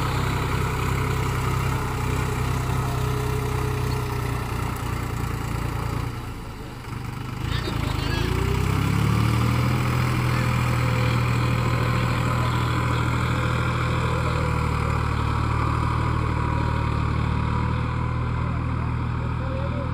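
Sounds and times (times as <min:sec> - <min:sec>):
tractor diesel engine working: 0:00.0 - 0:19.9.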